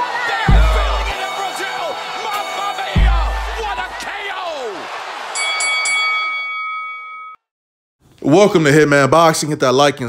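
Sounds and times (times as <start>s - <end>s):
boxing ring bell ringing: 5.4s - 7.5s.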